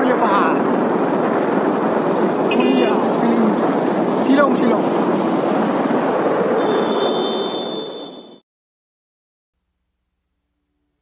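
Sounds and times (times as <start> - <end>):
wind and road noise: 0.0 - 8.4.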